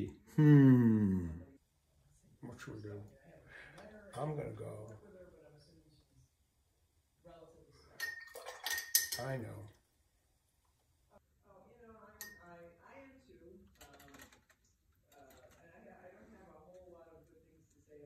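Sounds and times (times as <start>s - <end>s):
paintbrush clinking glass jar: 8.0s - 9.4s.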